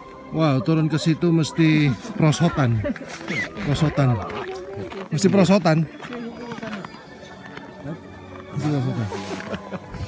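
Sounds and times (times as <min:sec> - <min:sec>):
background voices talking and calling: 0:00.0 - 0:10.0.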